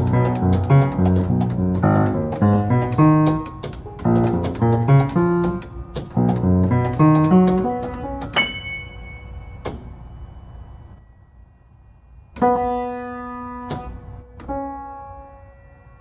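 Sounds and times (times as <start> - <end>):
player piano chords: 0.0 - 11.1, 12.3 - 16.0.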